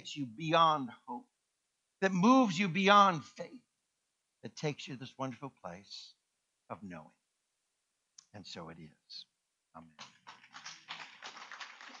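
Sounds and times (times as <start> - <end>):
congregation applauding: 10.0 - 12.0.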